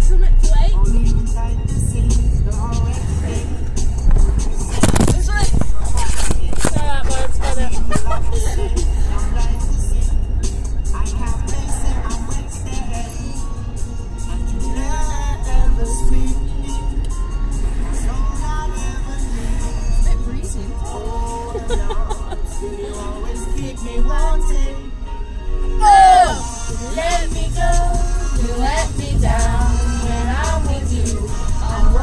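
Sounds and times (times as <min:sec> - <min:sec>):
moving car rumble: 0:00.0 - 0:32.0
pop song on car stereo: 0:00.0 - 0:32.0.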